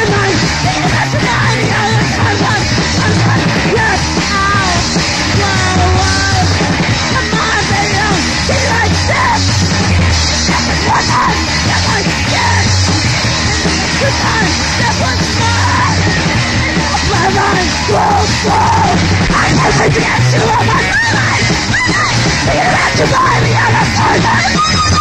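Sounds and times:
distorted electric guitar: 0.0 - 25.0
drums: 0.0 - 25.0
yelled screeching vocals: 0.0 - 25.0.

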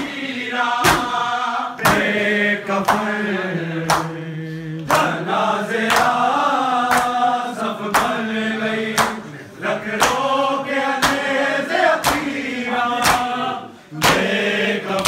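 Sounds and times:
men chanting in unison: 0.0 - 15.0.

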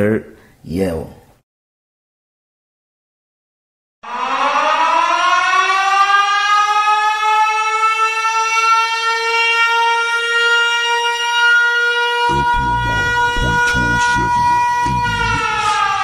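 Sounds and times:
siren-like wail: 4.0 - 16.0.

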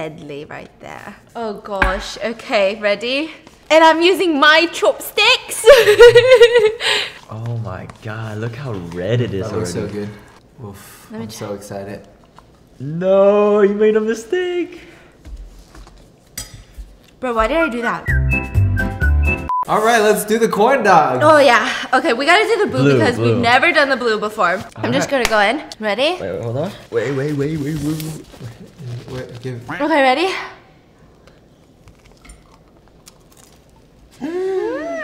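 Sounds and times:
crunching bites of food: 31.9 - 33.9.

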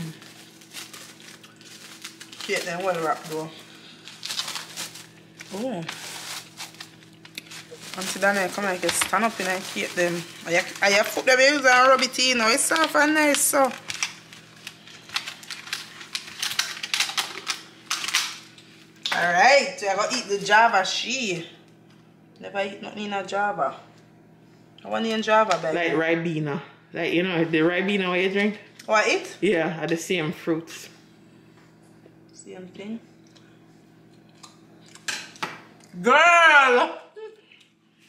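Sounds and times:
plastic wrapping crinkling: 0.0 - 19.0.

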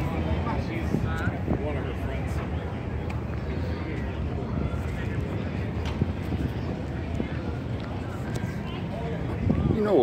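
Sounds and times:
faint voices: 0.0 - 10.0
wind rumble on microphone: 0.0 - 10.0.

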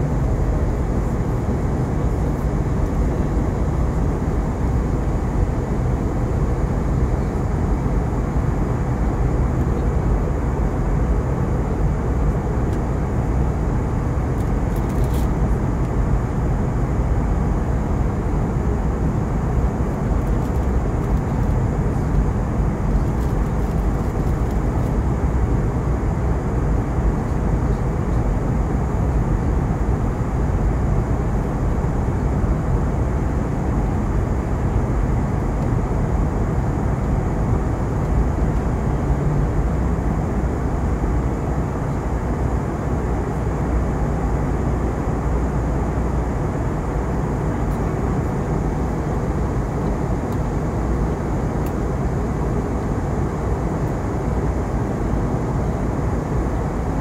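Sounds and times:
airliner cabin engine and airflow noise: 0.0 - 57.0.

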